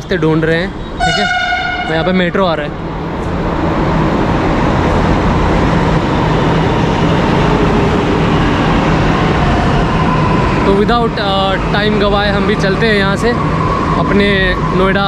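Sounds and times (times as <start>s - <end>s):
train rumbling past: 0.0s - 15.0s.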